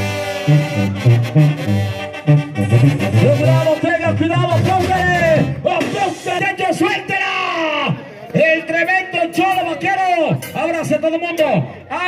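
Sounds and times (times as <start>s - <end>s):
sustained brass horns: 0.0s - 5.9s
sousaphone bass line: 0.0s - 6.5s.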